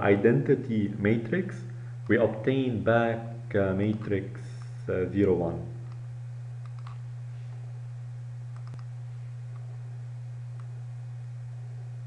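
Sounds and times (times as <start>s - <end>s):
low electrical hum: 0.0s - 12.0s
computer mouse clicks: 6.6s - 7.0s, 8.5s - 8.9s.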